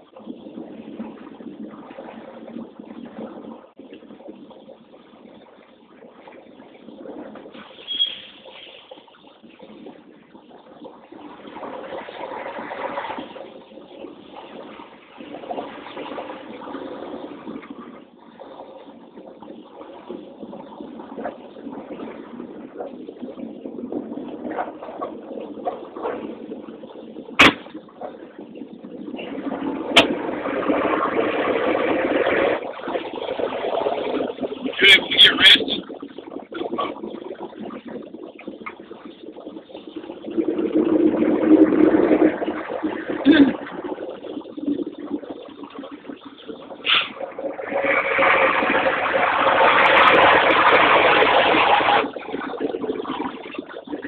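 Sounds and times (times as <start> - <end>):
truck engine and tyres rumbling: 0.0 - 54.0.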